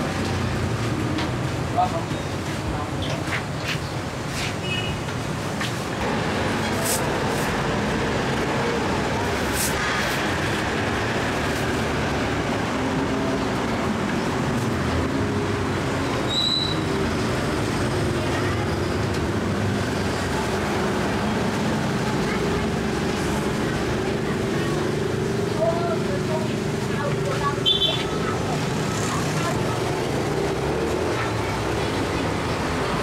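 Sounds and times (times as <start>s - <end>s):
motorbikes and cars passing: 0.0s - 33.0s.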